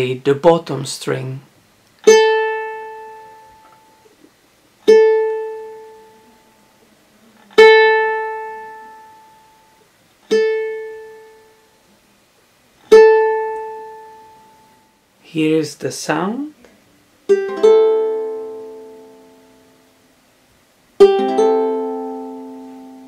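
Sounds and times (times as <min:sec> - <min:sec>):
ukulele string plucked: 0:02.0 - 0:04.1, 0:04.8 - 0:06.3, 0:07.6 - 0:09.4, 0:10.3 - 0:11.5, 0:12.9 - 0:14.5, 0:17.3 - 0:19.4, 0:21.0 - 0:23.0.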